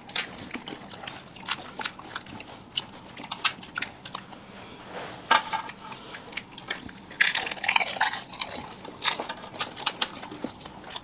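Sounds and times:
crunching of crisp shells: 0:00.0 - 0:04.4, 0:05.6 - 0:11.0.

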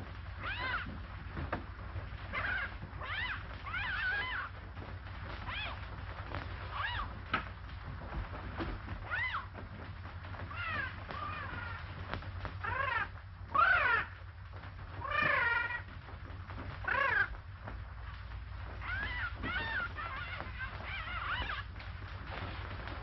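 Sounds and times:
steady low hum: 0:00.0 - 0:23.0
cat meowing: 0:00.4 - 0:01.0, 0:02.3 - 0:04.6, 0:05.2 - 0:06.0, 0:06.6 - 0:07.4, 0:09.0 - 0:09.6, 0:10.4 - 0:14.2, 0:18.7 - 0:21.8.

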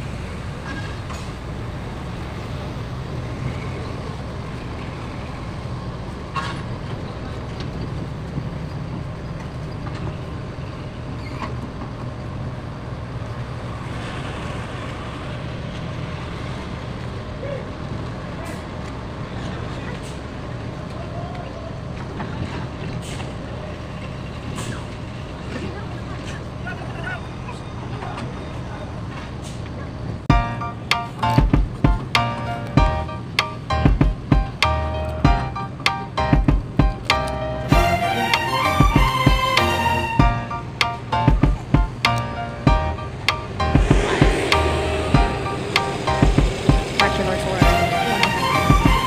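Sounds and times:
low engine rumble: 0:40.2 - 0:49.0.

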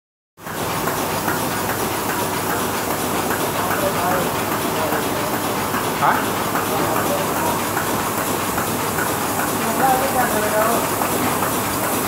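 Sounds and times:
steady machine noise: 0:00.4 - 0:12.0.

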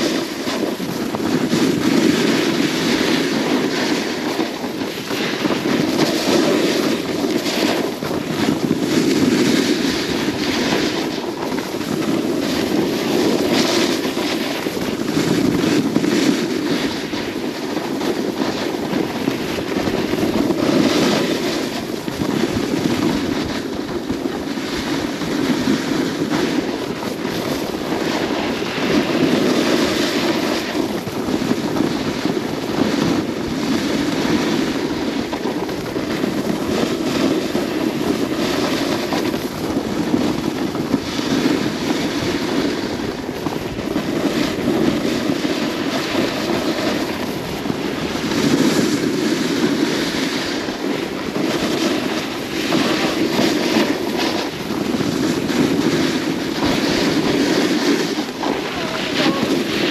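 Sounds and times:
skis hissing on snow: 0:00.0 - 0:59.9
wind rushing over microphone: 0:00.0 - 0:59.9.

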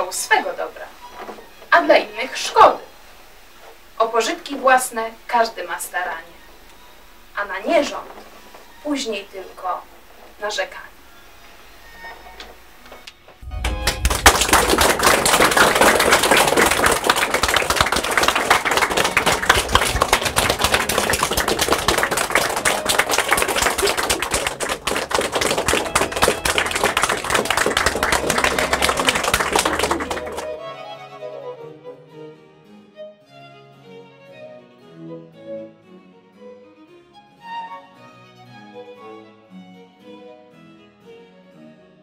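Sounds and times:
audience applauding: 0:13.4 - 0:30.7.

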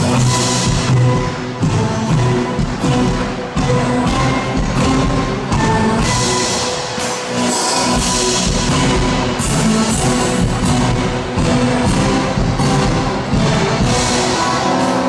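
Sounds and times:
drum and cymbal beat: 0:00.0 - 0:15.0
live band playing pop music: 0:00.0 - 0:15.0.

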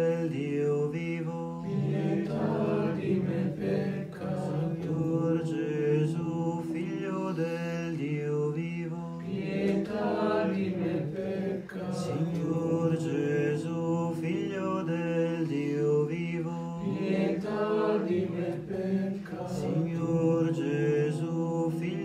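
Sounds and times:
voices singing a chant: 0:00.0 - 0:22.0.

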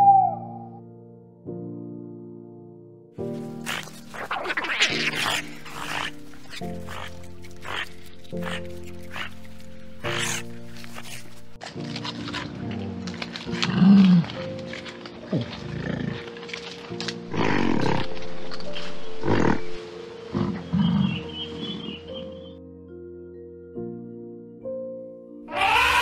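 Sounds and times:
music of sustained tones: 0:00.0 - 0:26.0
short animal calls: 0:25.5 - 0:26.0.

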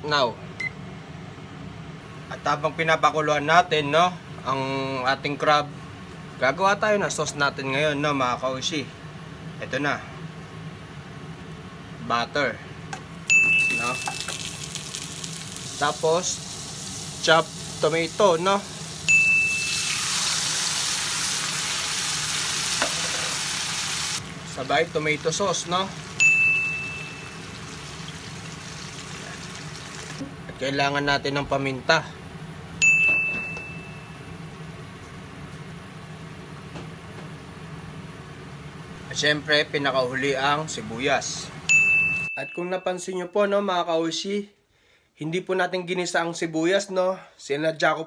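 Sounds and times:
low kitchen hum: 0:00.0 - 0:45.2
steady high tone: 0:13.3 - 0:14.4, 0:18.2 - 0:20.3, 0:26.1 - 0:27.6
butter sizzling in a frying pan: 0:13.6 - 0:26.2, 0:27.3 - 0:30.2.

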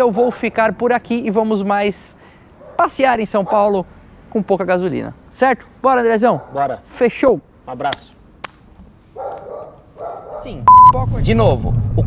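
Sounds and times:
dog barking: 0:02.6 - 0:03.7, 0:06.3 - 0:06.8, 0:09.2 - 0:10.7
electronic beep: 0:10.7 - 0:11.0.

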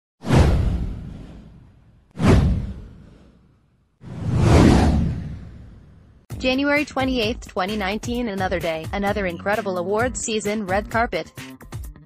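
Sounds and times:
whoosh with deep boom: 0:00.2 - 0:06.3.

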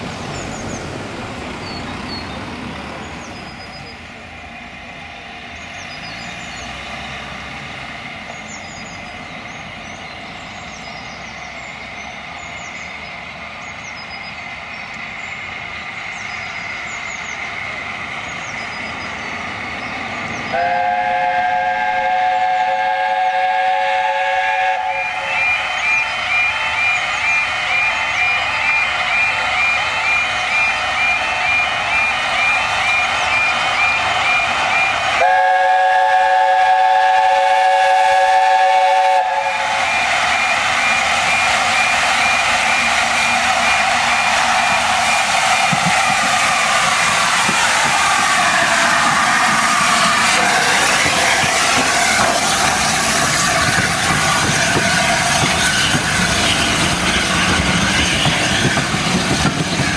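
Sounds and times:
approaching train noise: 0:00.0 - 0:59.9
steam locomotive chime whistle: 0:20.5 - 0:59.9.

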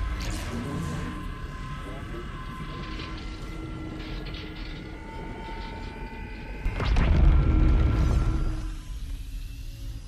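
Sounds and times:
sustained humming tones: 0:00.0 - 0:10.0.

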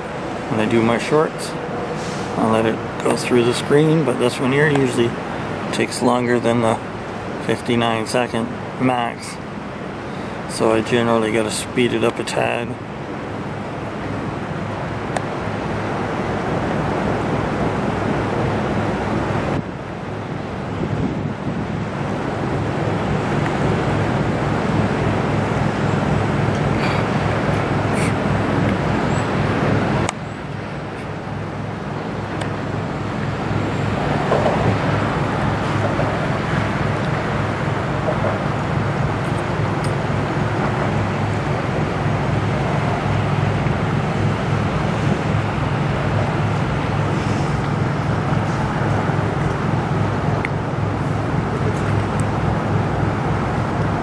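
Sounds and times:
ship engine drone: 0:00.0 - 0:54.0.

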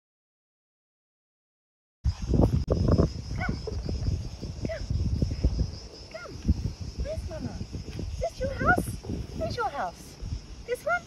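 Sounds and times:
low rumbling on microphone: 0:02.1 - 0:10.6.

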